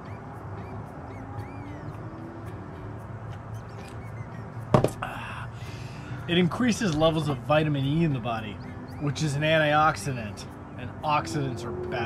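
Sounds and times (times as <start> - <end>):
birds chirping: 0.0 - 12.0.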